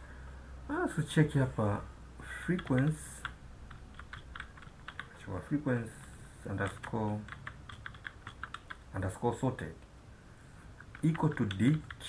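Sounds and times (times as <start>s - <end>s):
light keyboard keystrokes: 2.6s - 5.2s, 6.6s - 8.8s, 10.8s - 12.0s.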